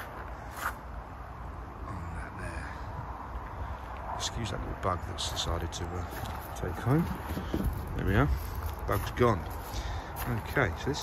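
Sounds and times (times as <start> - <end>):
low outdoor rumble: 0.0 - 11.0
footstep on gravel: 6.0 - 11.0.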